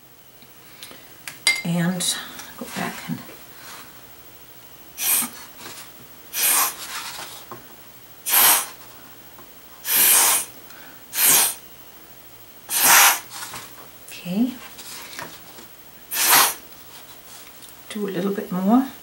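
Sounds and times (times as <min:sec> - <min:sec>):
breath puffs through a straw: 0:08.3 - 0:08.8, 0:09.8 - 0:10.5, 0:11.2 - 0:11.6, 0:12.7 - 0:13.3, 0:16.1 - 0:16.6.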